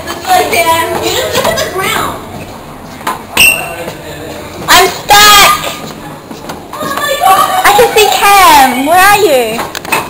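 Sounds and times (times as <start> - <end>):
young people calling out: 4.7 - 5.9, 6.7 - 9.4.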